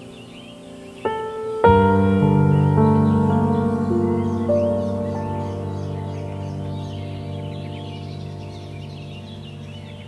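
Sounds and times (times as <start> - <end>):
ambient music with held tones: 0.0 - 10.0
birds chirping: 0.0 - 10.0.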